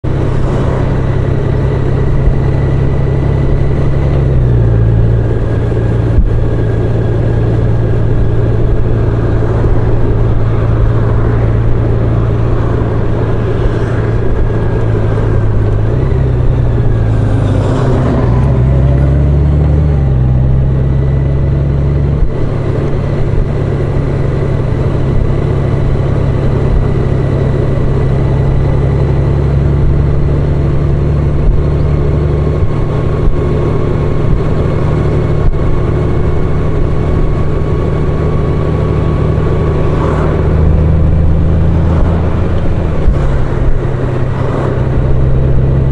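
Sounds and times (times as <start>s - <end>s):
motorcycle engine running: 0.0s - 45.9s
wind and road noise: 0.0s - 45.9s.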